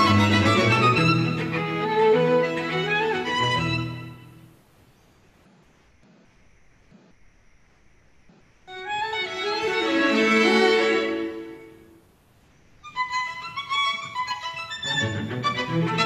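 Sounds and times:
classical string music: 0.0s - 4.5s, 8.7s - 11.9s, 12.8s - 16.0s.

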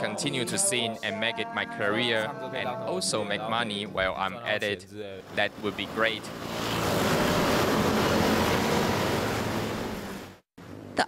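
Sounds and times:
scooters and cars passing: 5.2s - 11.0s.

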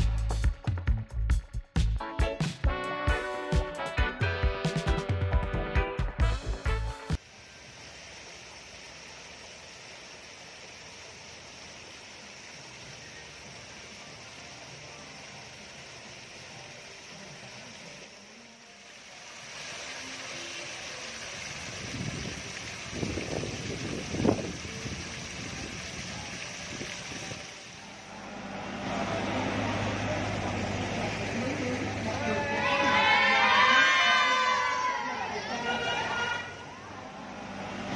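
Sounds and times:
fountain jets splashing into pool: 2.7s - 37.9s.

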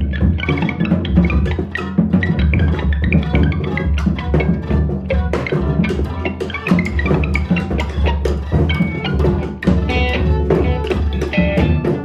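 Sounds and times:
bowed viola: 0.0s - 12.0s
drum kit playing: 0.0s - 12.0s
electric guitar: 4.4s - 12.0s.

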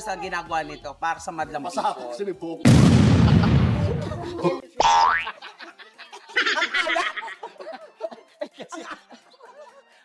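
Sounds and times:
high-pitched laughing: 3.4s - 9.8s.

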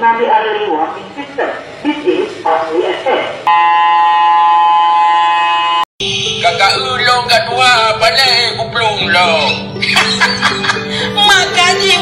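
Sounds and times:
electronic buzzer tone: 3.5s - 5.9s.

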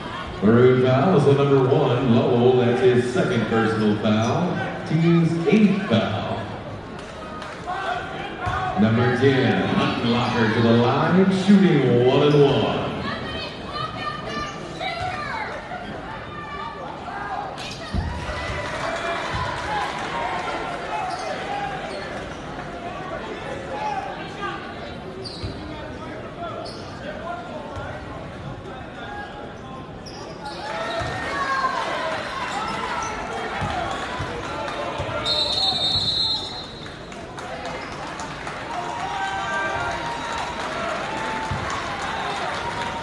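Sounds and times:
crowd voices: 0.0s - 43.0s.

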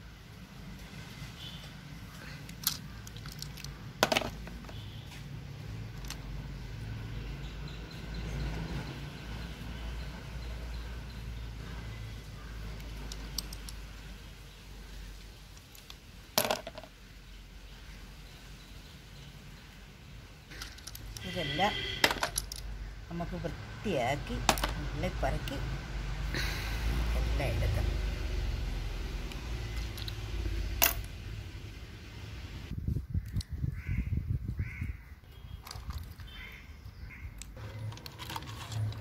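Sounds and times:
clam shells clattering: 2.5s - 4.7s, 15.8s - 16.9s.

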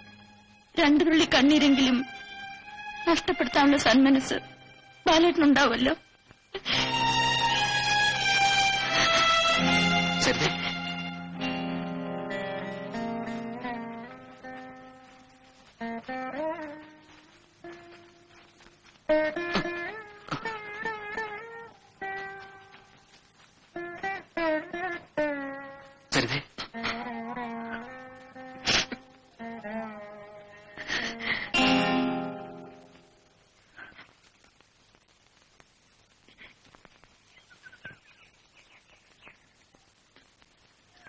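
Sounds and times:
low hiss: 0.0s - 41.0s
plucked string melody: 6.7s - 23.0s, 23.7s - 33.3s
faint bird chirps: 36.4s - 40.0s.

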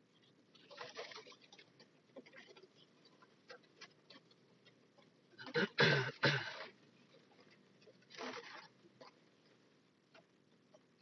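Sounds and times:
man clearing his throat: 5.4s - 6.7s.

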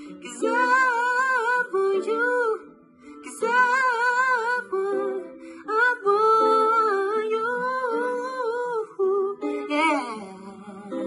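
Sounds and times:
soft plucked guitar: 0.0s - 11.0s
young man singing wordless run: 0.1s - 2.6s, 3.2s - 11.0s.

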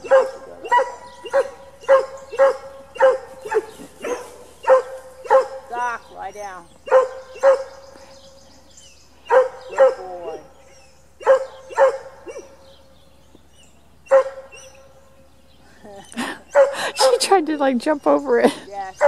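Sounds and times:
dog barking: 0.0s - 6.0s, 6.8s - 7.8s, 9.3s - 10.5s, 11.2s - 12.6s, 14.1s - 14.9s, 16.5s - 17.2s.

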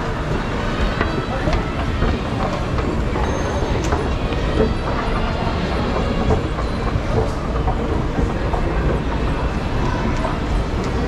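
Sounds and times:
escalator rumbling and clicking: 0.0s - 11.0s
shopping centre crowd noise: 0.0s - 11.0s.

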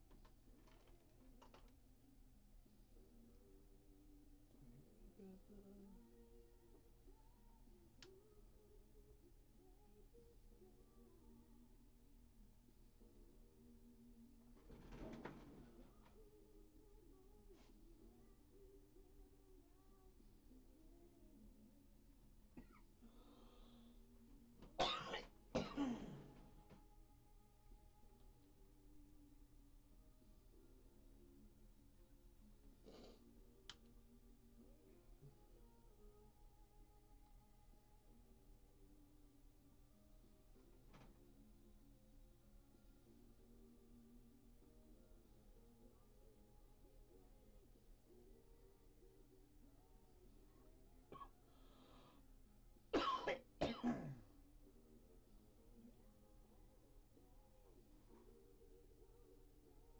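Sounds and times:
person coughing: 24.8s - 26.4s, 53.0s - 54.3s.

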